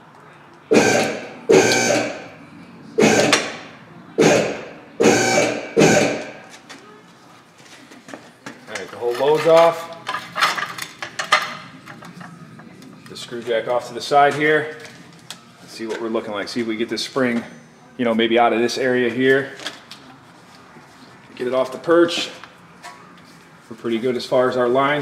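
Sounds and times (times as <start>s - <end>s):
vehicle lift motor bursts: 0.7s - 2.3s, 3.0s - 3.6s, 4.2s - 6.4s.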